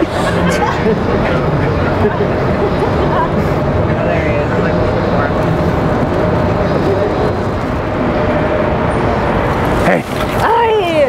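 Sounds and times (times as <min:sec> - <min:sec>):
faint voices: 0:00.0 - 0:08.0
constant hum: 0:00.0 - 0:11.0
traffic rumble: 0:00.0 - 0:11.0.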